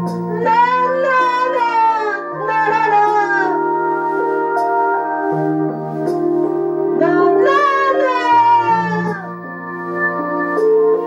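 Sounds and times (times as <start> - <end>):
karaoke backing track: 0.0 - 11.0.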